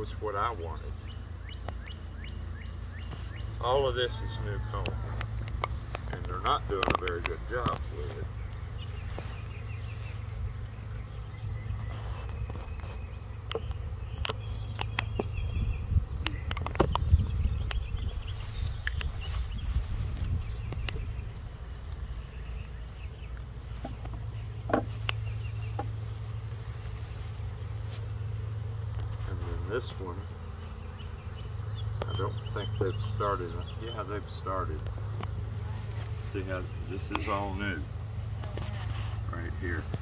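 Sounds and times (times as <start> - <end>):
honeybees buzzing: 0.0 - 40.0
wooden frames clicking and knocking: 23.8 - 26.0.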